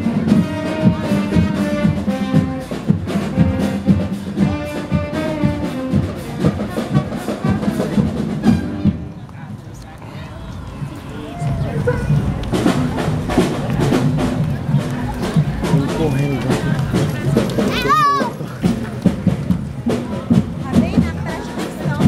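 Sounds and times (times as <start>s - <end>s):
brass melody: 0.0s - 9.1s, 10.2s - 20.7s
drums beating: 0.0s - 22.0s.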